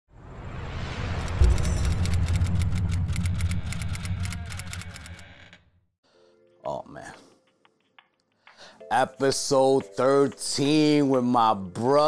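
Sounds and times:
deep low swell: 0.1s - 5.3s.

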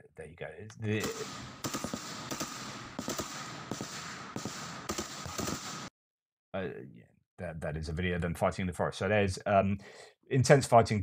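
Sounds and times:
rifle shots: 1.0s - 5.9s.

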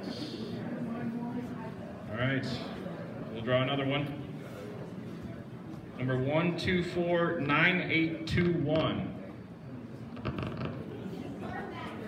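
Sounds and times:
murmur of people in a hall: 0.0s - 12.0s.

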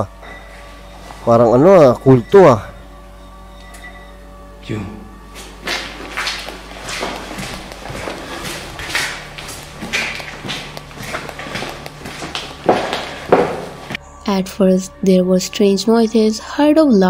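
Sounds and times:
footsteps scuffing on gritty concrete: 5.3s - 14.0s.

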